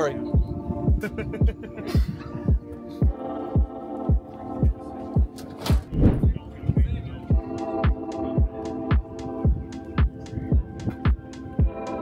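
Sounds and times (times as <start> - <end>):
deep bass drum beat: 5.8 - 11.8.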